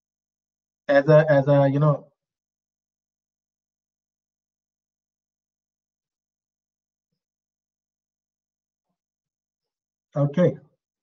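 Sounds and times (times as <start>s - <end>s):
person speaking: 0.9s - 2.0s.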